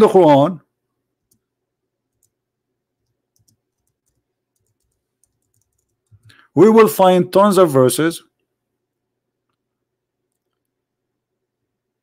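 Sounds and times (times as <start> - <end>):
computer keyboard clicks: 3.0 - 6.4.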